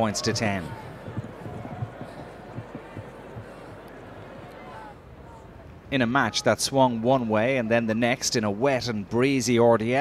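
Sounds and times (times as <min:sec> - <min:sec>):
faint distant voices: 0:00.0 - 0:07.0
crowd noise: 0:00.0 - 0:10.0
low thuds: 0:00.7 - 0:03.7.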